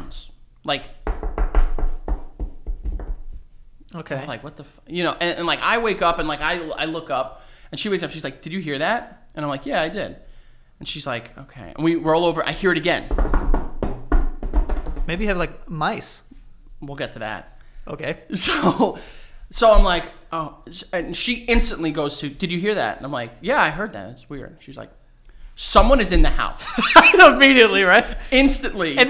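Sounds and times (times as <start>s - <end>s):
hands knocking on wooden desk: 1.0s - 3.4s, 13.1s - 15.2s
fingers tapping on wooden table: 13.1s - 15.1s.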